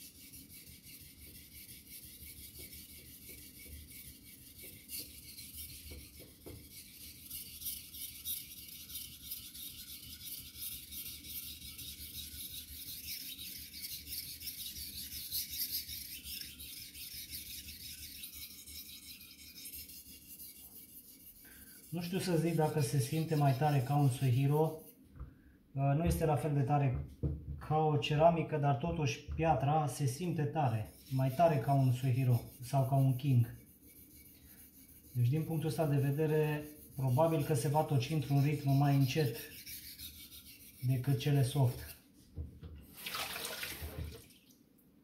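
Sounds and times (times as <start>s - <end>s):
knife rasping on whetstone: 0.0s - 25.0s, 30.7s - 42.0s.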